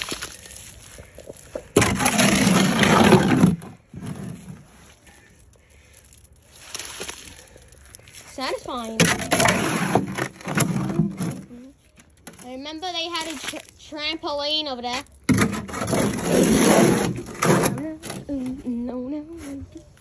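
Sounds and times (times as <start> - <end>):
shovel scraping wet concrete: 1.6 - 4.9, 8.4 - 11.4, 15.3 - 18.0.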